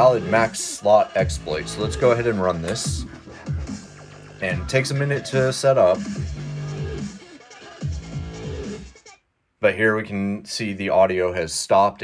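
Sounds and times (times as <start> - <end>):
dubstep through portable speaker: 0.0 - 9.0.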